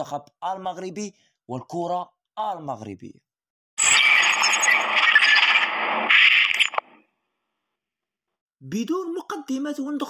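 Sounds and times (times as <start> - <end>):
static hiss with crackle: 3.8 - 7.0.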